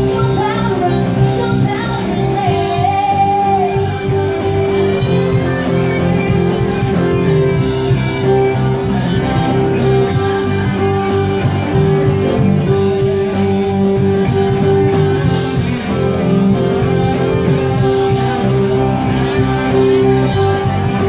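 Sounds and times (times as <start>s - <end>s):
bass guitar: 0.0s - 21.0s
electric guitar: 0.0s - 21.0s
steady drumbeat: 0.0s - 21.0s.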